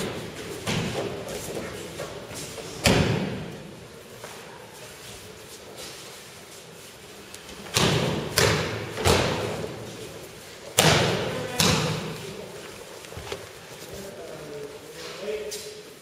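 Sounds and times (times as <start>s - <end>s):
body slapping onto mats: 7.5s - 9.8s.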